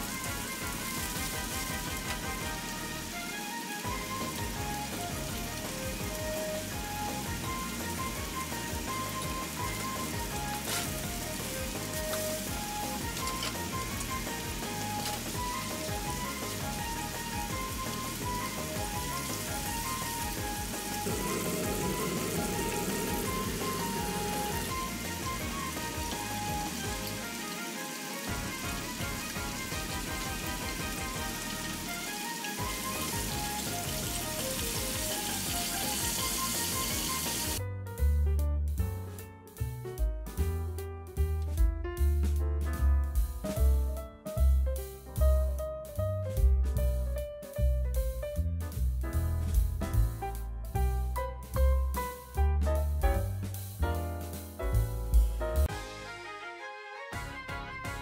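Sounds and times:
food sizzling in hot oil: 0.0 - 37.6
light background music: 0.0 - 58.0.

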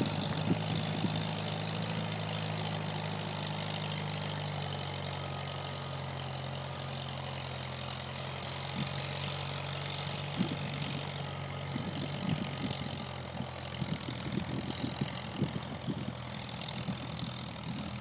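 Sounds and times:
tractor engine running under load: 0.0 - 18.0.

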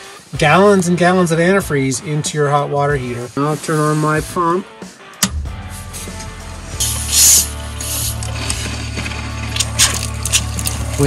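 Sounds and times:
pump switch click: 5.2 - 5.4.

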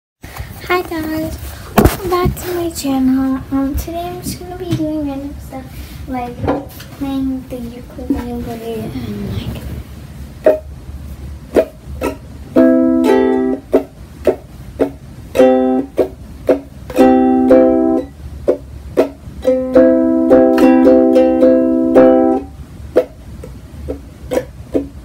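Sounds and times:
ukulele strumming: 10.4 - 25.0.

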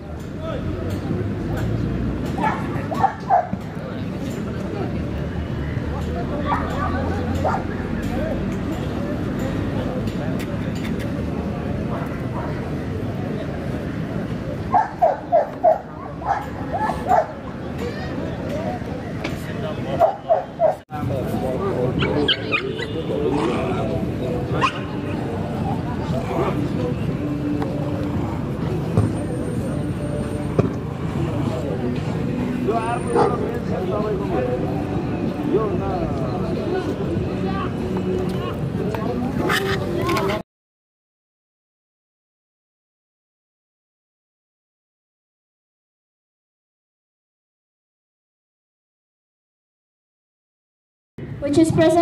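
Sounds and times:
background chatter: 0.0 - 40.4
dog barking: 2.4 - 3.5, 14.7 - 17.4, 20.0 - 20.8, 33.1 - 33.4.

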